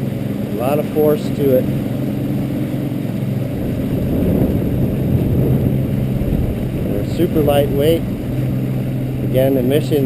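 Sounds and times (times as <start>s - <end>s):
churning wake water: 0.0s - 10.0s
outboard motor running: 0.0s - 10.0s.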